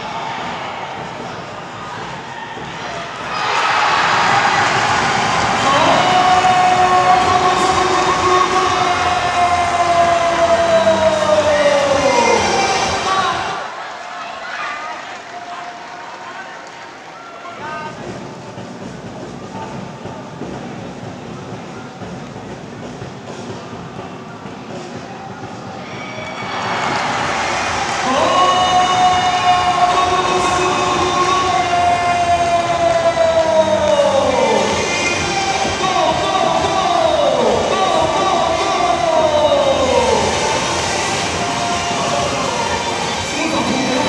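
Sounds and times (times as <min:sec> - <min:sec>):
background crowd noise: 0:00.0 - 0:44.0
commentator shouting: 0:05.4 - 0:13.7, 0:28.0 - 0:40.7.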